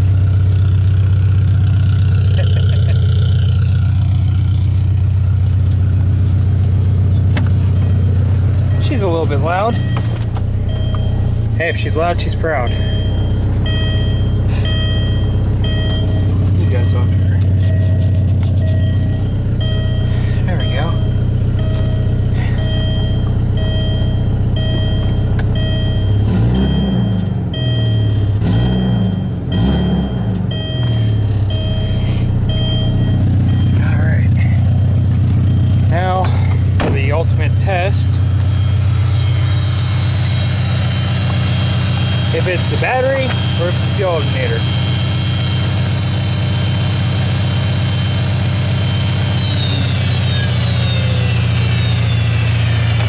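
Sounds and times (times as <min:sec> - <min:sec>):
car engine idling and revving: 0:00.0 - 0:53.0
dashboard warning chime beeping: 0:01.6 - 0:53.0.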